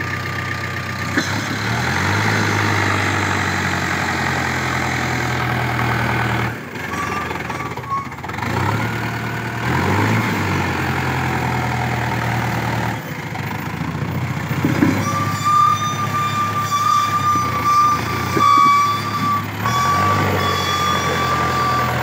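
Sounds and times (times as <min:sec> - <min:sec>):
tractor diesel engine running: 0:00.0 - 0:22.0.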